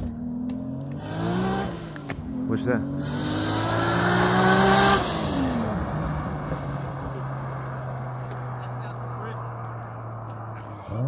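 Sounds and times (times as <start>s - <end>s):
distant car engine accelerating: 0.0s - 11.0s.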